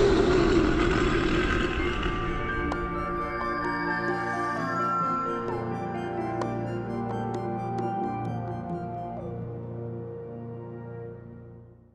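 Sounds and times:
soft ambient music: 0.0 - 11.9.

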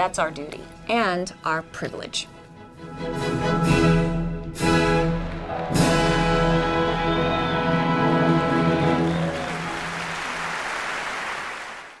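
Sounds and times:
audience applauding: 5.0 - 12.0.

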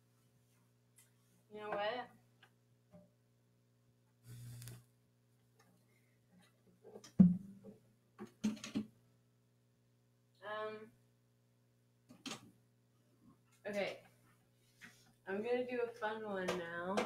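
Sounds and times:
electrical hum: 4.2 - 4.9.

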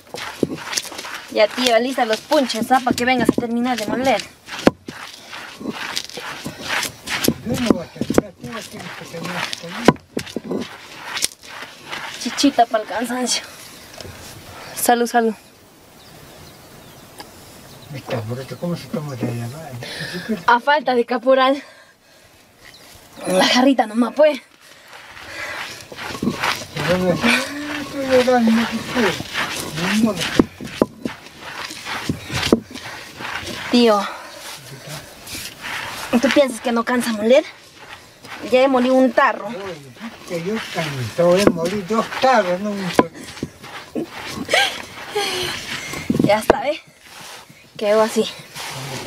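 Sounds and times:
stone grinding on stone: 0.0 - 13.4, 25.0 - 34.1, 35.1 - 47.5
stone knocks: 2.8 - 5.0.

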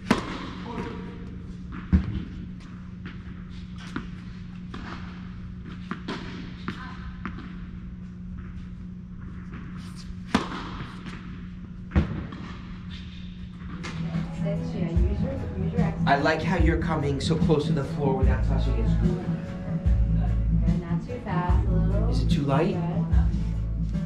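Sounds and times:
tennis balls struck and bouncing: 0.0 - 14.9
low hum of hall: 0.0 - 24.0.

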